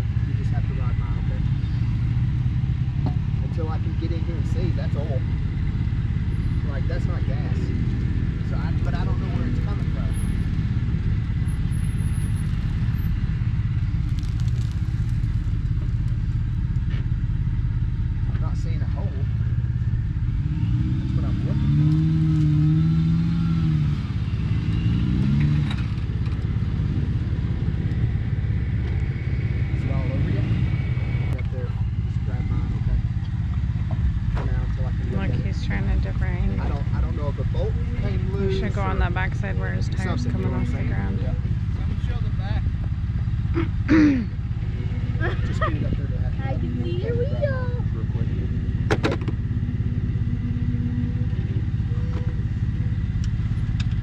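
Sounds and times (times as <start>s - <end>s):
car engine revving under load: 0.0s - 54.0s.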